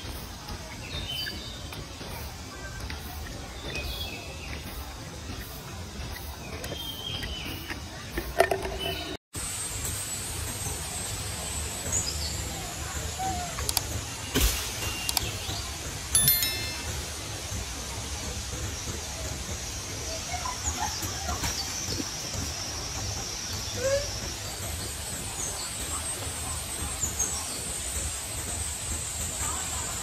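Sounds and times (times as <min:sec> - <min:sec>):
short bright chime: 0:16.2 - 0:17.2.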